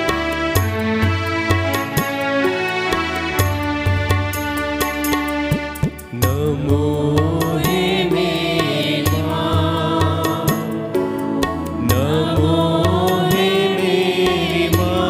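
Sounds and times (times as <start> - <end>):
instrumental accompaniment: 0.0 - 15.0
women singing a hymn: 6.8 - 10.9, 11.9 - 15.0.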